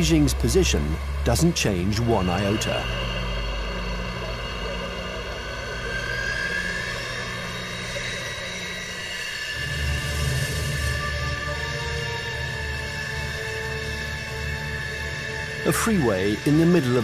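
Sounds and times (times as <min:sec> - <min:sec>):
aircraft engine whining: 0:00.0 - 0:17.0
low pulsing music: 0:00.0 - 0:17.0.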